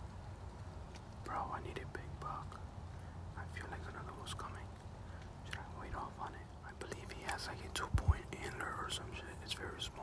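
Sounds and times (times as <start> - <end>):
man whispering: 1.2 - 10.0.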